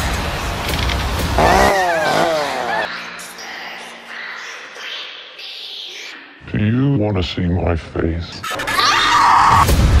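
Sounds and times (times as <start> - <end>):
high vocal cries: 1.4 - 2.9.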